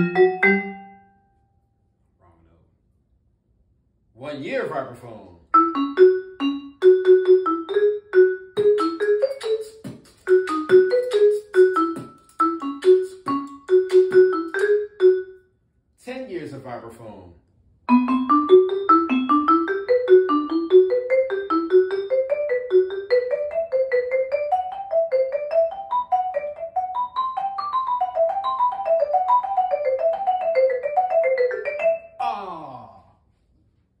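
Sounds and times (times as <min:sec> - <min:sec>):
vibraphone fast run: 0:00.0 - 0:01.0, 0:05.6 - 0:15.3, 0:17.9 - 0:32.1.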